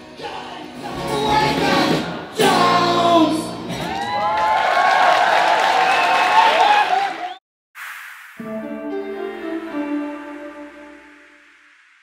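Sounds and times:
live acoustic rock band: 0.0 - 4.2.

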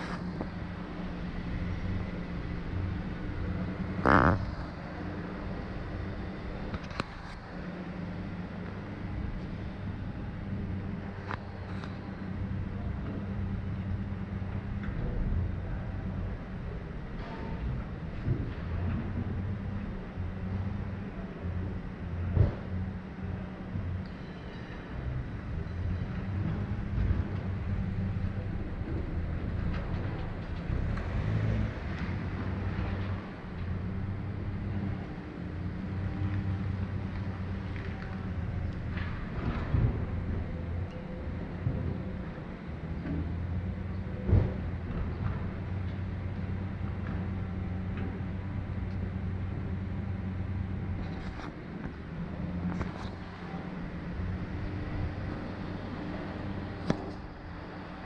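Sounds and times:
car engine idling: 0.0 - 17.2, 25.0 - 44.9, 45.6 - 57.7.

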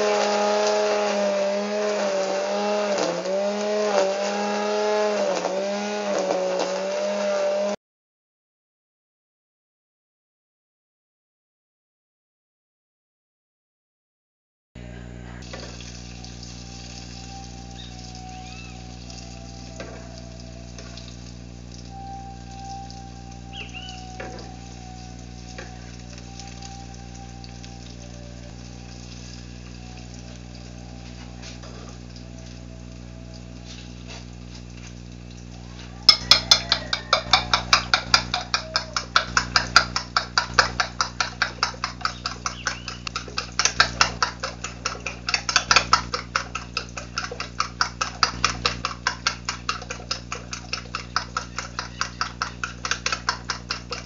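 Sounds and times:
food sizzling in a pan: 15.4 - 21.8, 27.5 - 54.0
fork beating eggs on a plate: 36.0 - 54.0.

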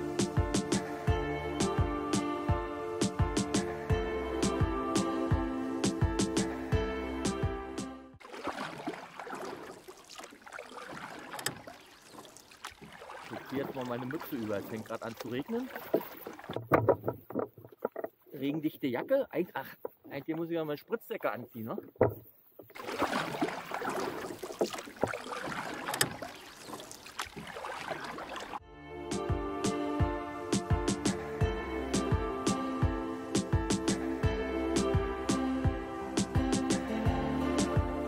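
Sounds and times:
music: 0.0 - 8.2, 28.6 - 38.0
small water splashes: 8.2 - 20.6, 21.2 - 28.6
kayak paddle dipping into water: 8.2 - 28.6
water trickling off paddle: 8.2 - 28.6
clicks and knocks: 16.5 - 18.2, 21.8 - 22.7.

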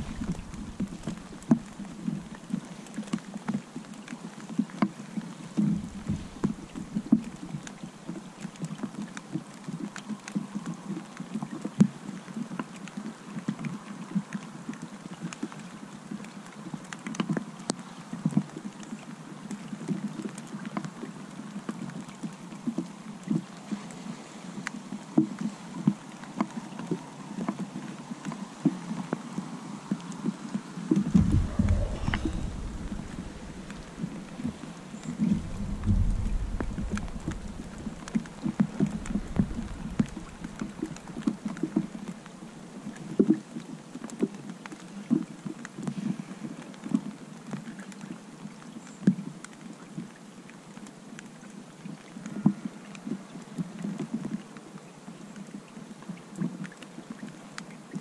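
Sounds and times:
taps and buffets on microphone: 0.0 - 2.8, 5.6 - 8.7, 30.9 - 42.4
rain and wind on microphone: 0.0 - 58.0.

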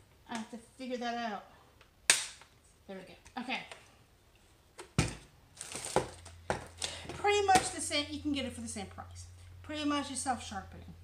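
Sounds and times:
woman speaking: 0.3 - 1.5, 2.9 - 3.8, 7.1 - 11.0.

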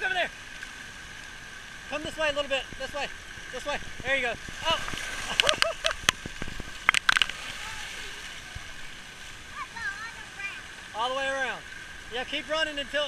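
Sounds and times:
water spraying from fountains: 0.0 - 13.0.

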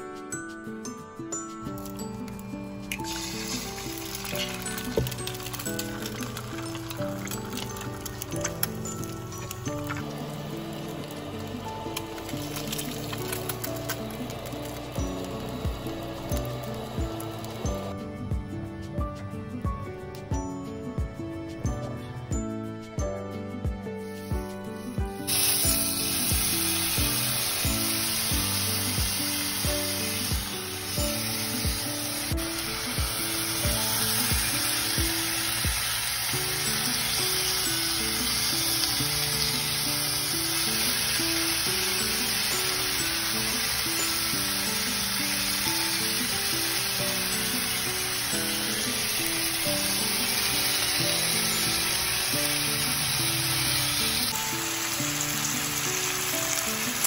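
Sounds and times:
background music with beat: 0.0 - 55.9
bacon sizzling in frying pan: 1.7 - 17.9, 24.8 - 57.0.

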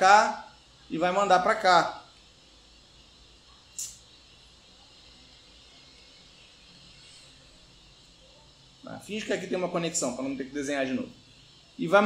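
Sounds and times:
steady background hiss: 0.0 - 12.0
short sharp hiss: 2.0 - 5.2.

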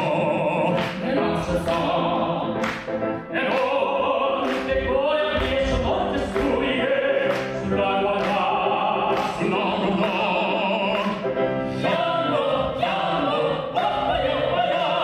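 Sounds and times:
bass voice singing opera: 0.0 - 2.7, 3.3 - 15.0
grand piano accompaniment: 0.0 - 15.0
tenor voice singing opera: 0.0 - 15.0.

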